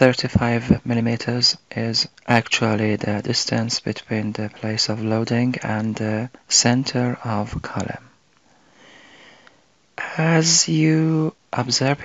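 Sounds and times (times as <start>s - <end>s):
quiet nasal in-breath: 8.4s - 10.1s.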